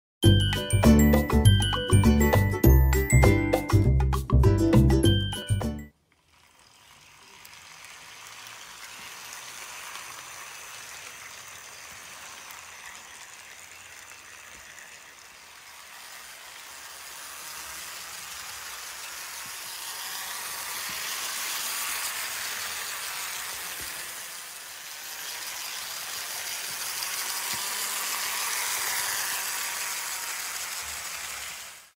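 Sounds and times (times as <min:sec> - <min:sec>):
model train motor whirring: 0:05.9 - 0:32.0
wheels rattling on rails: 0:06.8 - 0:31.9.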